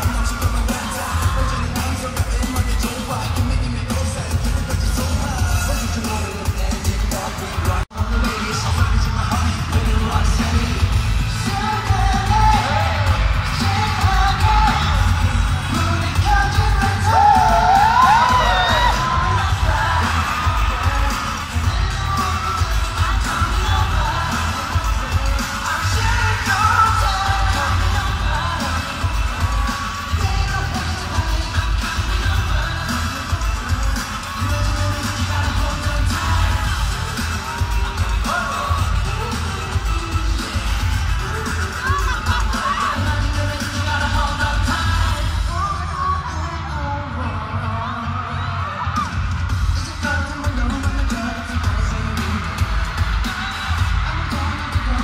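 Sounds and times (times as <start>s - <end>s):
group singing: 0.0s - 45.5s
crowd yelling along: 0.0s - 55.0s
live pop music with bass beat: 0.0s - 55.0s.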